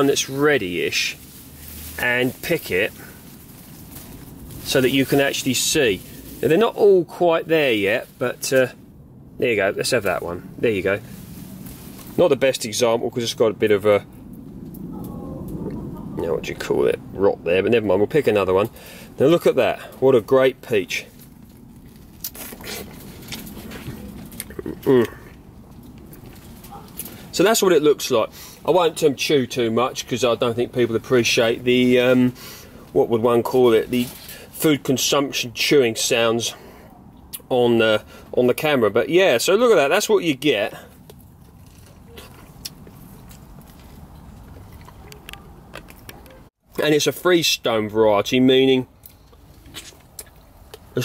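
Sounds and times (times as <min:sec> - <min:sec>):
low background rumble: 0:00.0 - 0:46.6
person biting and chewing peach: 0:22.1 - 0:25.2, 0:41.0 - 0:46.0, 0:49.1 - 0:50.9.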